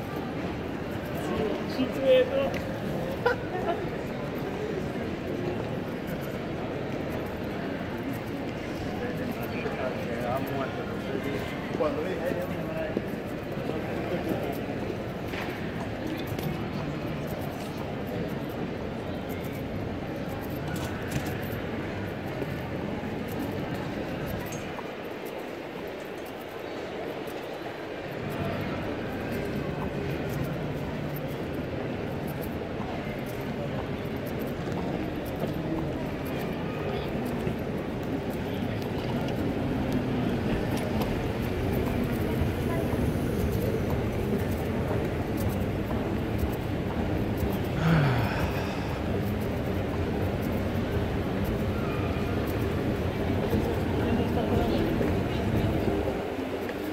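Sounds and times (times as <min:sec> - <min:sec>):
crowd noise: 0:00.0 - 0:56.9
faint indistinct voices: 0:00.0 - 0:56.9
low rumble of terminal hall: 0:00.0 - 0:56.9.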